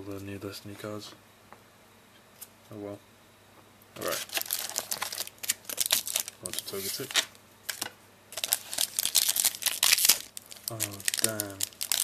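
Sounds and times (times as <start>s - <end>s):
foil wrapper crinkling: 4.0s - 12.0s.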